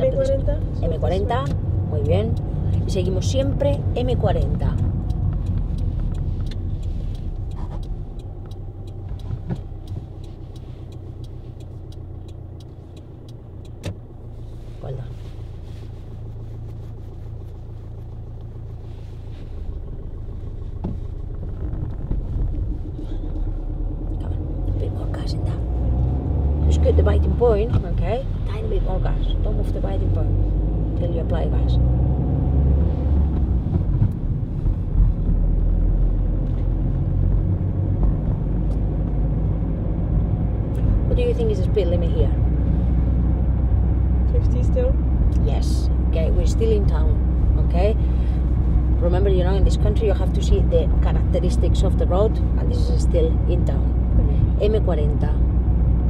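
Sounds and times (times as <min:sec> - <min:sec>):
car engine and road noise: 0:00.0 - 0:56.0.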